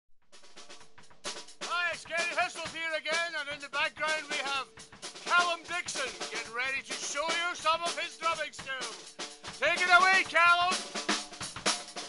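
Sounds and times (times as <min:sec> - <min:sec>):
drum hits: 0:00.3 - 0:12.0
man speaking: 0:01.7 - 0:04.7, 0:05.3 - 0:09.0, 0:09.6 - 0:10.8.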